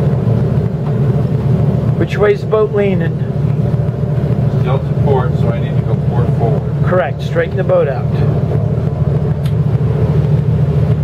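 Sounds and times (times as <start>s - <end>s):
boat engines droning: 0.0s - 11.0s.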